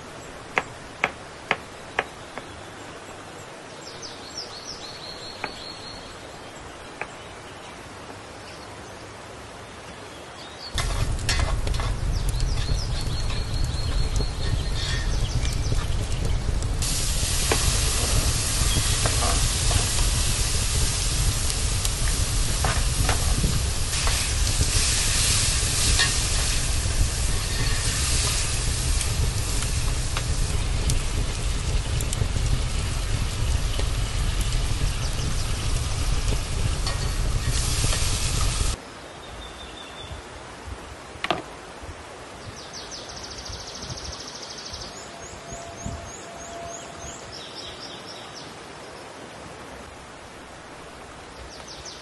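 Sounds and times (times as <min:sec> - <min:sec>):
low rumble: 0:10.8 - 0:38.8
vegetables sizzling in hot oil: 0:10.8 - 0:38.8.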